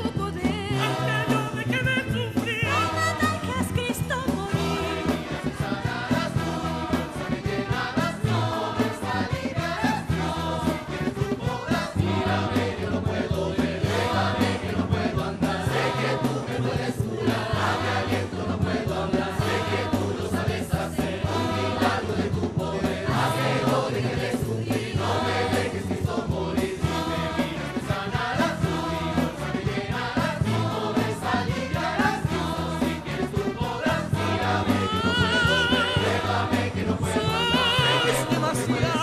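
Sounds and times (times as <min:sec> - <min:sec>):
choir singing over low notes: 0:00.8 - 0:01.6, 0:04.5 - 0:39.0.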